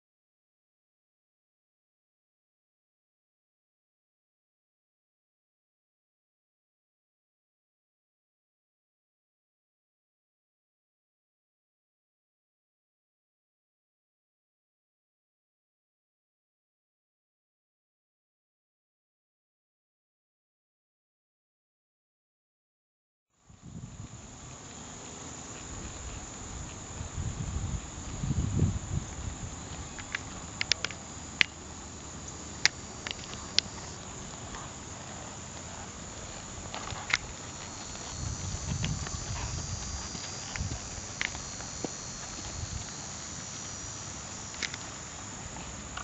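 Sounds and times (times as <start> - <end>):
insects droning: 23.4 - 46.0
horse hoofbeats on dirt: 24.5 - 28.2, 32.7 - 46.0.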